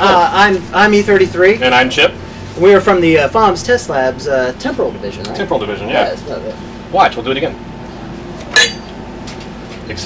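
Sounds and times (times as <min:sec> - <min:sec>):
drinking glass clink: 0:08.6 - 0:09.0.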